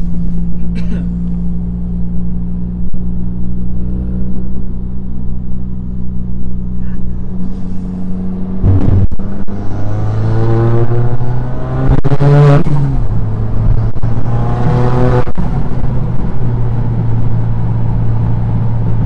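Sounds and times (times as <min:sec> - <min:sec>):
car engine from inside cabin: 0:00.0 - 0:19.0.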